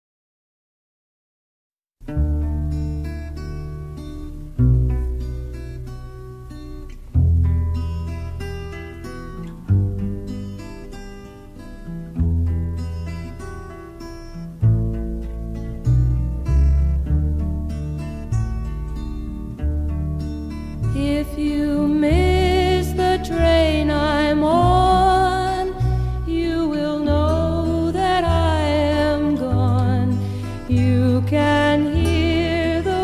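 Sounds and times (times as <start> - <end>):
fingerpicked acoustic guitars: 2.0 - 33.0.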